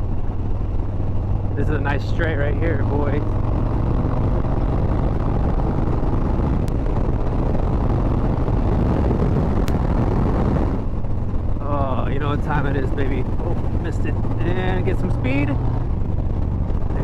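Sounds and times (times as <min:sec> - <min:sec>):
motorcycle engine drone: 0:00.0 - 0:17.0
wind rush on microphone: 0:00.0 - 0:17.0.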